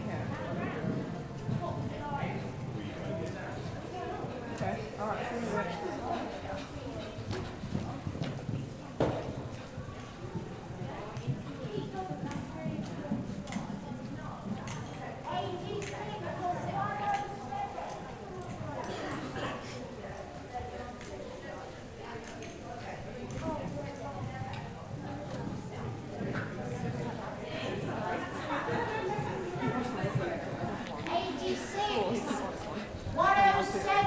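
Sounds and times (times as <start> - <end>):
indistinct voices talking: 31.1 - 34.0.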